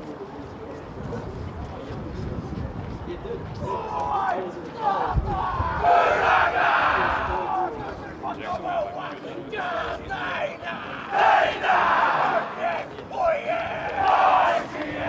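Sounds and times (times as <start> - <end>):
group of men shouting a chant: 3.7 - 7.6, 9.5 - 15.0.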